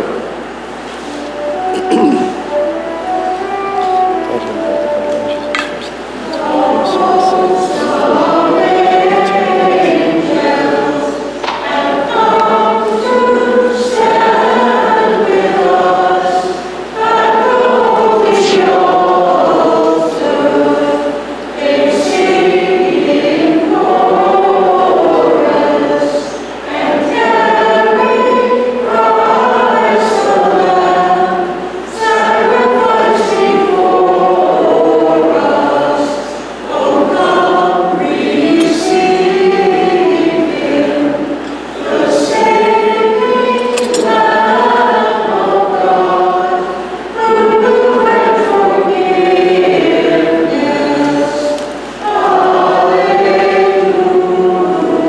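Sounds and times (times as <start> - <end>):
church choir singing a hymn: 0.0 - 55.0.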